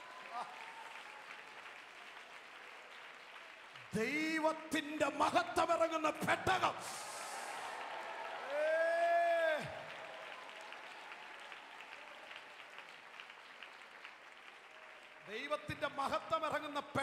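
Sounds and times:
congregation applauding: 0.0s - 17.0s.

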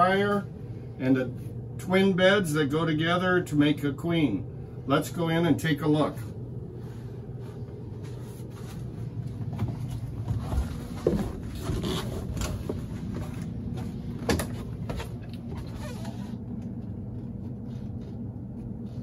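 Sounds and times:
low machinery hum: 0.0s - 19.0s.

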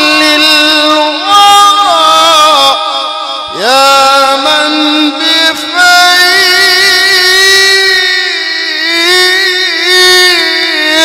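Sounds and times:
man chanting religious text: 0.0s - 11.0s.

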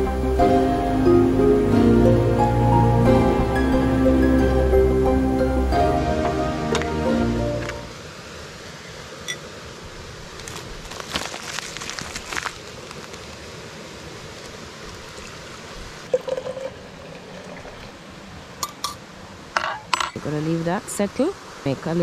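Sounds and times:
background music: 0.0s - 8.0s
paper rustling: 10.4s - 13.4s.

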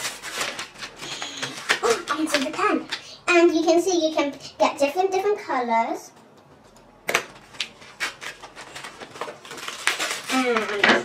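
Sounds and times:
plastic wrapper rustling: 0.0s - 3.1s, 7.3s - 11.0s.

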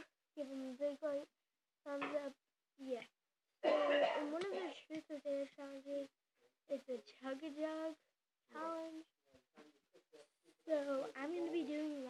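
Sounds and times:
girl's rough wordless vocal sound: 3.6s - 5.0s.

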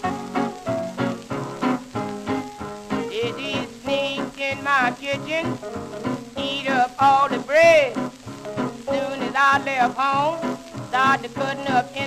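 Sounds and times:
old blues record playing: 0.0s - 12.0s.

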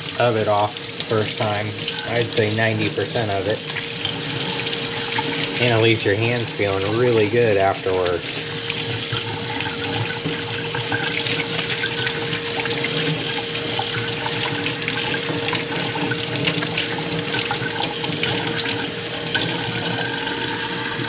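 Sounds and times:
faucet running into sink: 0.0s - 21.0s.

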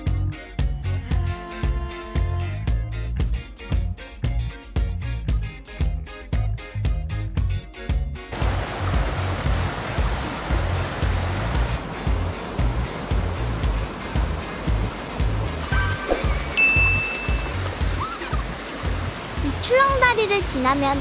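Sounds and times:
background music with low beat: 0.0s - 19.4s
stream rushing over boulders: 8.3s - 21.0s.

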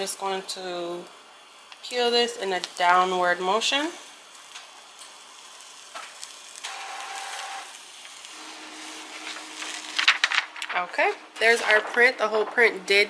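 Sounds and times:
film peeling off fabric crackle: 4.4s - 10.9s
faint printer hum: 6.6s - 10.4s.

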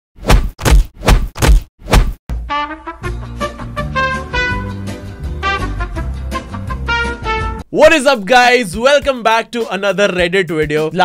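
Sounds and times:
impact sound effects with bass thump: 0.3s - 2.5s.

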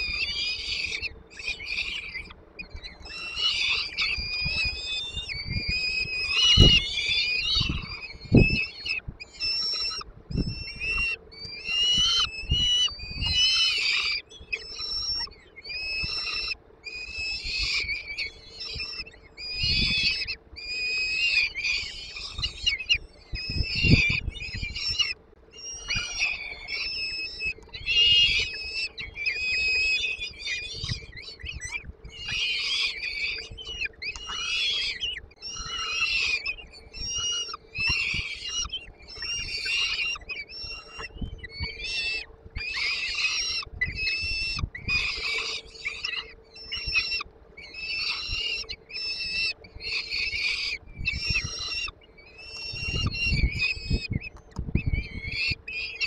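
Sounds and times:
chicks high begging calls: 0.0s - 56.0s.

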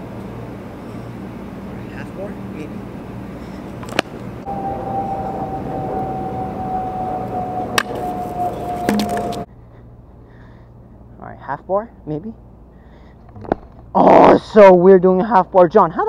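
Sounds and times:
steady whine: 0.0s - 9.6s
scooter wheel rolling on asphalt: 6.0s - 9.5s.

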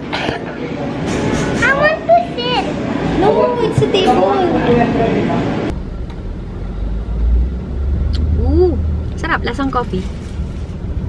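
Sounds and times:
car rumble from inside cabin: 5.7s - 11.0s.

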